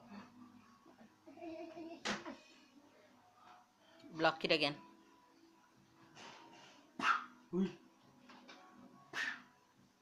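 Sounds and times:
short sharp yelps: 0:07.0 - 0:07.4, 0:09.2 - 0:09.5.

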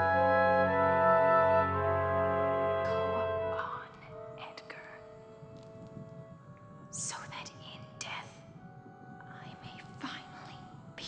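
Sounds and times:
faint sustained music tones: 0:00.0 - 0:11.0
person whispering: 0:03.6 - 0:05.1, 0:07.0 - 0:08.4, 0:09.2 - 0:10.7.

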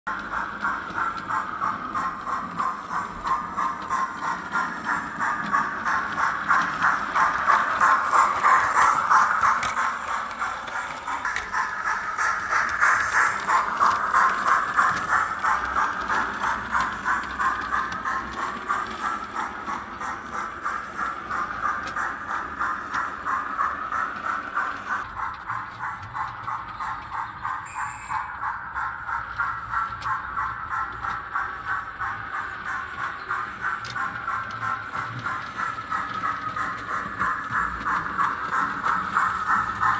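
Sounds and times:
model locomotive steam chuffs: 0:00.1 - 0:39.9.

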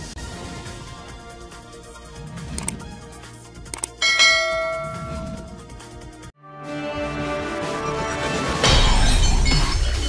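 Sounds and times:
background music: 0:00.0 - 0:10.0
mouse clicks: 0:02.5 - 0:02.8, 0:03.7 - 0:04.0
bell notification chime: 0:04.0 - 0:05.6.

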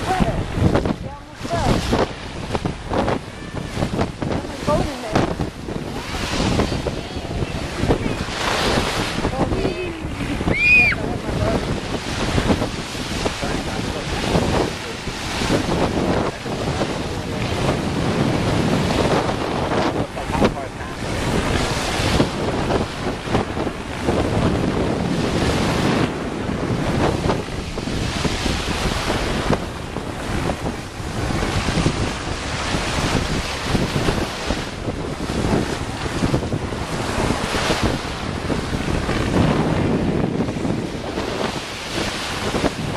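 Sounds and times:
small waves breaking on shore: 0:00.0 - 0:42.9
wind buffeting microphone: 0:00.0 - 0:42.9.

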